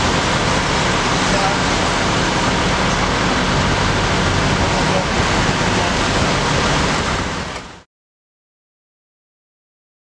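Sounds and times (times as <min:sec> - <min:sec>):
low engine hum: 0:00.0 - 0:07.9
rushing outdoor noise: 0:00.0 - 0:07.9.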